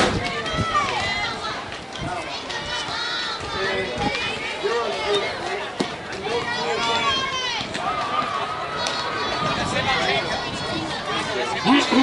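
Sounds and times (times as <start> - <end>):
voices calling and chattering: 0.0 - 12.0.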